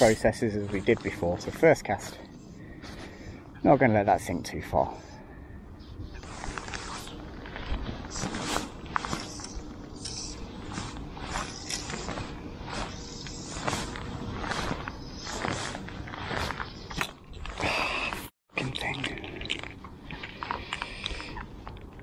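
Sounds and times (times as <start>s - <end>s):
rustles and scrapes of handling: 0.0s - 5.1s, 6.2s - 18.2s.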